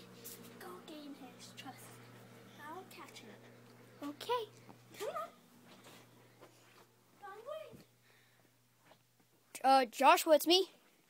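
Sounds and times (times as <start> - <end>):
low steady hum: 0.0 - 9.8.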